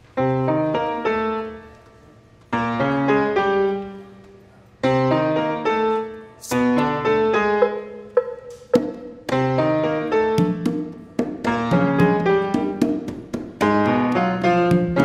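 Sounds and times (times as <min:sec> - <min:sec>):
grand piano chords: 0:00.0 - 0:15.0.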